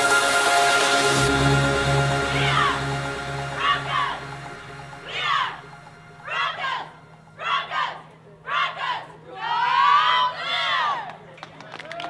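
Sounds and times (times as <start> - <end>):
rising group yell: 5.0 - 5.6, 6.2 - 11.1
women shouting together: 6.2 - 11.1.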